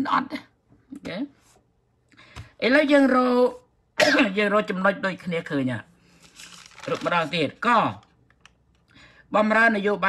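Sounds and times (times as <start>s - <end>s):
man speaking: 6.8s - 8.1s.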